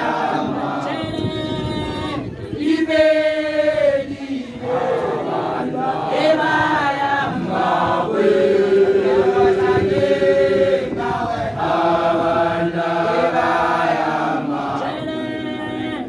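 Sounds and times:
group chanting a song: 0.0 - 16.0.

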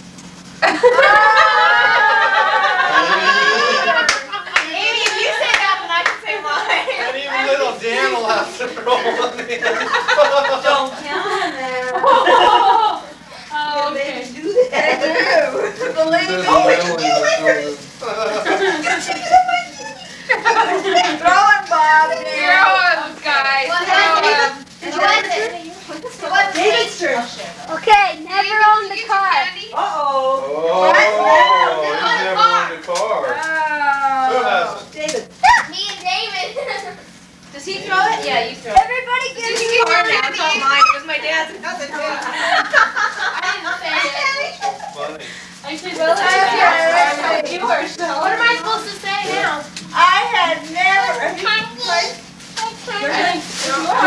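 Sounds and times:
people's voices: 0.8 - 34.3
hand claps: 4.0 - 6.2
children talking and calling out: 19.0 - 32.7, 35.3 - 42.2, 45.7 - 54.0.

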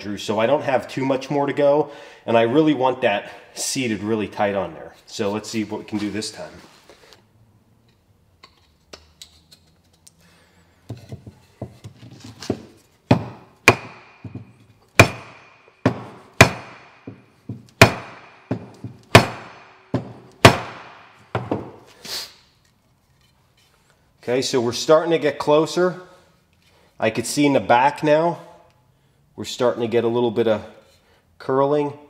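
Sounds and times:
wood block knocking on hatchet handle: 13.1 - 20.8.

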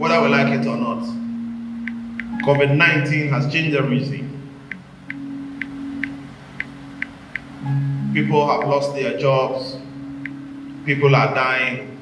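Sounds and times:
low keyboard pad chord: 0.0 - 12.0
light ticking: 1.8 - 2.7, 4.6 - 7.8, 8.5 - 8.9, 10.0 - 10.6.

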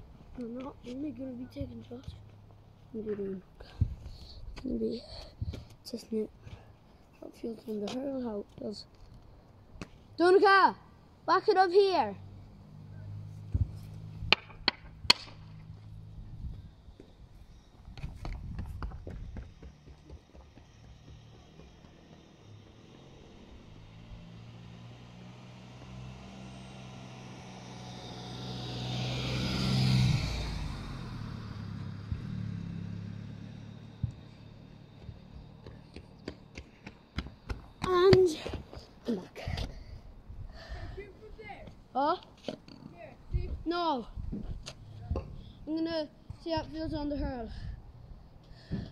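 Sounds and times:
tyre noise on road: 11.3 - 40.0, 40.6 - 48.9
car engine hum: 12.1 - 39.0, 43.8 - 46.2
hurley hitting ball: 14.3 - 15.6.

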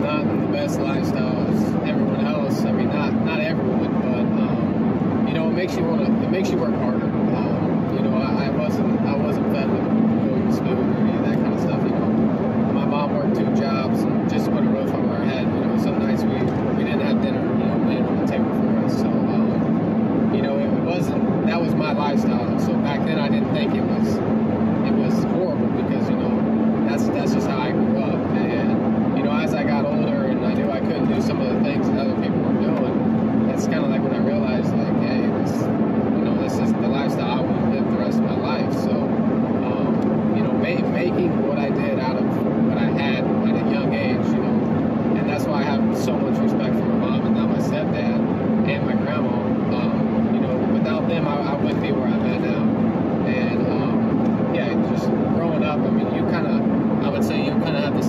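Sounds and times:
man talking: 0.0 - 24.2, 24.8 - 58.0
car engine and road drone: 0.0 - 58.0.

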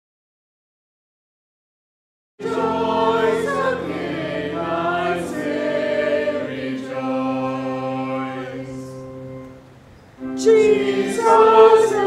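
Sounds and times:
congregation singing a hymn: 2.4 - 9.6, 10.2 - 12.0
held accompanying notes: 2.4 - 12.0.

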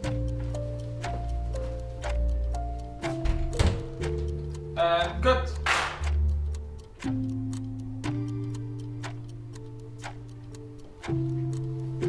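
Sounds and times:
background music of held notes: 0.0 - 12.0
door handle and lock knock: 3.1 - 4.0.

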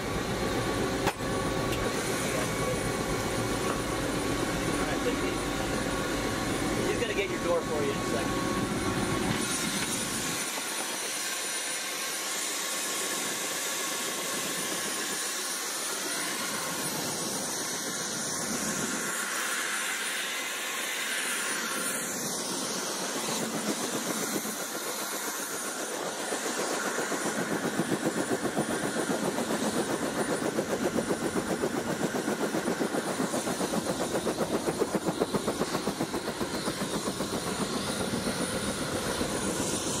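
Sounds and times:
helicopter engine whine: 0.0 - 40.0.

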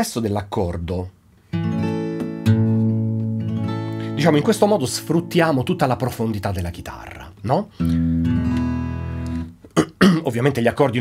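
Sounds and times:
acoustic guitar chord: 1.5 - 5.4, 7.8 - 9.5.

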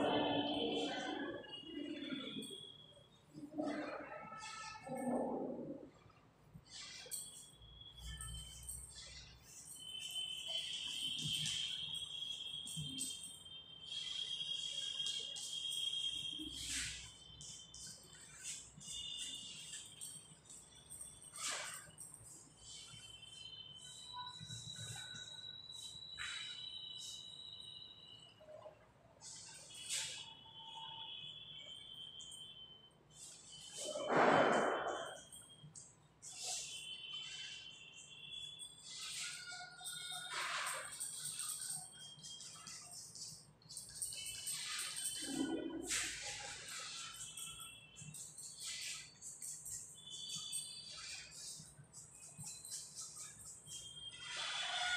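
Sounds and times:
high whistle-like tone: 6.6 - 54.9
chalk scratching on blackboard: 38.8 - 54.9.

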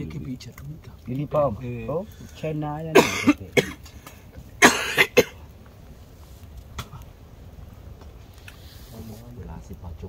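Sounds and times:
person coughing: 2.9 - 3.8, 4.6 - 5.4.

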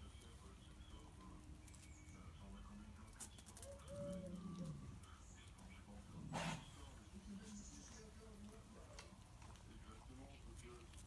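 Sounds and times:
dog growling: 6.2 - 6.7
rasping dog burst: 6.3 - 6.7.

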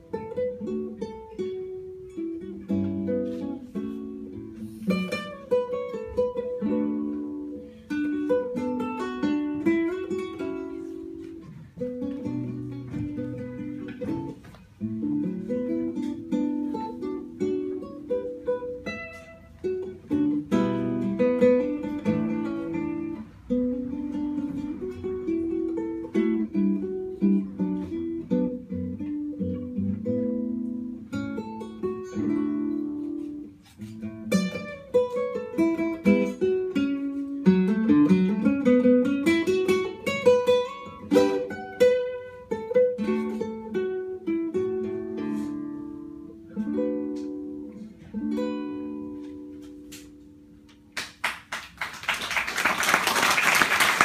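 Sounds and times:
fingerstyle acoustic guitar: 0.0 - 51.6.

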